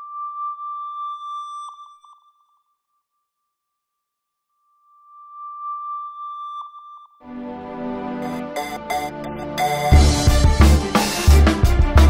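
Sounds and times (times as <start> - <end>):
high electronic tone: 8.2 - 10.7.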